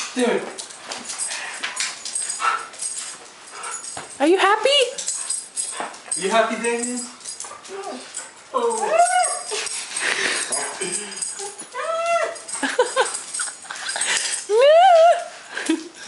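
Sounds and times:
dog whining and yowling: 7.6 - 9.8, 10.5 - 12.6, 13.3 - 15.5.

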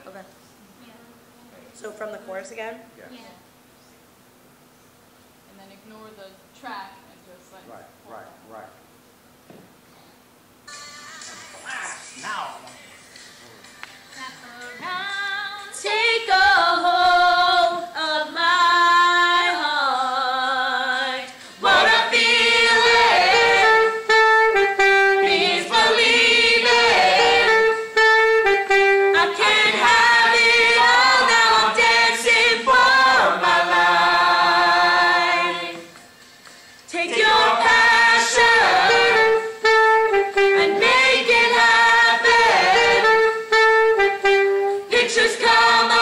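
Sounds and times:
young voices singing together: 14.1 - 24.0, 25.0 - 27.9, 29.0 - 36.0, 36.9 - 39.6, 40.4 - 43.3, 44.7 - 46.0.

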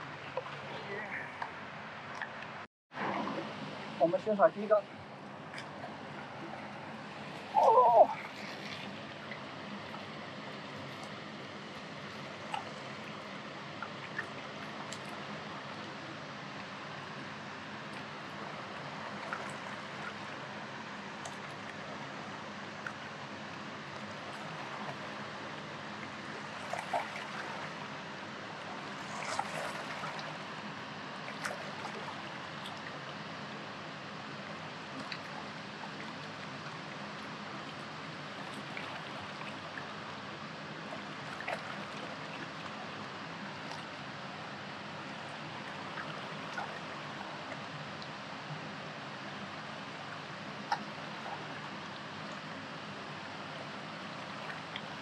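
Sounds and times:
river water running: 0.0 - 55.0.

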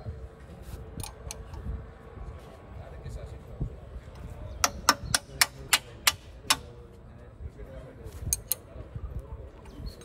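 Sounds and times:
sharp metallic clicks: 4.6 - 6.7, 8.3 - 8.7.

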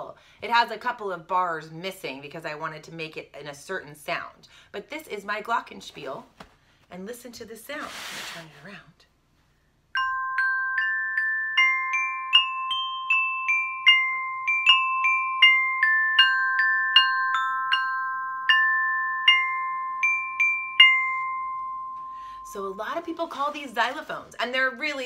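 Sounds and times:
glockenspiel notes: 9.9 - 23.6.

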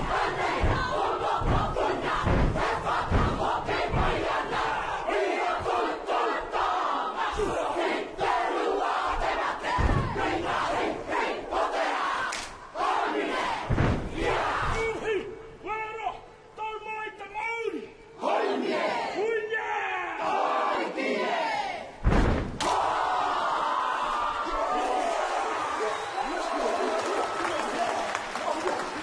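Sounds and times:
massed voices chanting in unison: 0.0 - 15.1, 18.2 - 19.2, 20.2 - 22.0.

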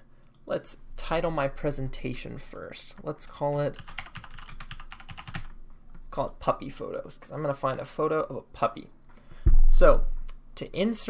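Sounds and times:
fast typing on keyboard: 3.4 - 5.6.

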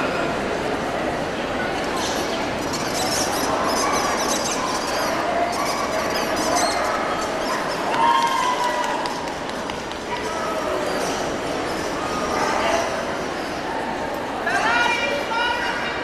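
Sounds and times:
crowd chatter in a large hall: 0.0 - 16.0.

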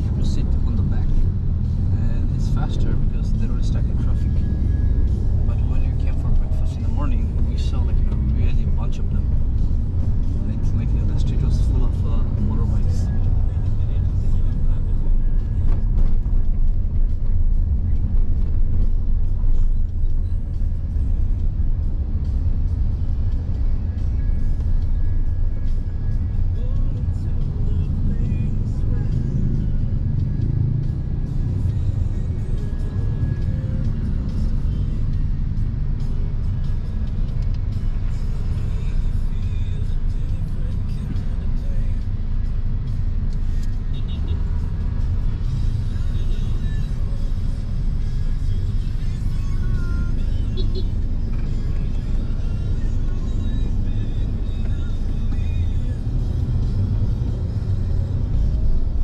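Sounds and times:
car interior rumble: 0.0 - 59.0
faint music: 0.0 - 59.0.

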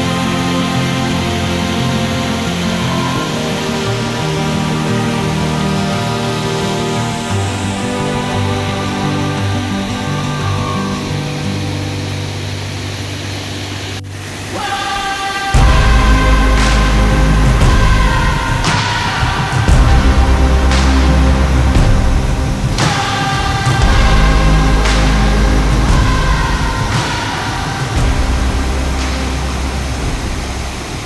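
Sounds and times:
slow background music: 0.0 - 31.0
waterfall rushing: 0.0 - 31.0
music with heavy bass: 15.6 - 31.0.

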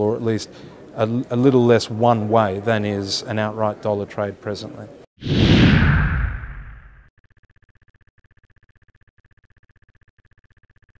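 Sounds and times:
deep rumble: 5.2 - 7.1.

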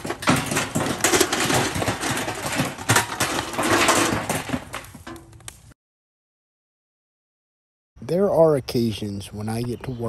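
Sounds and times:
fire crackling in metal barrel: 0.0 - 5.8.

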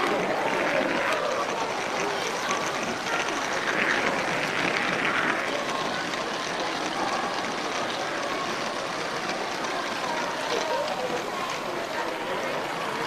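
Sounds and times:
murmur of crowded hall: 0.0 - 13.0
toy train wheels rattling on track: 0.0 - 13.0.

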